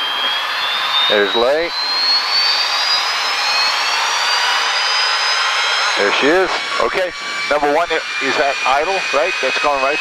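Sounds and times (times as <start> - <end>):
jet engine spooling up: 0.0 - 10.0.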